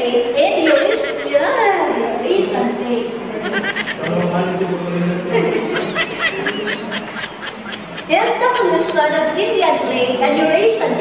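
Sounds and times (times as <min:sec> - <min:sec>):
woman laughing: 0:00.6 - 0:01.4, 0:03.5 - 0:04.5, 0:05.4 - 0:09.0.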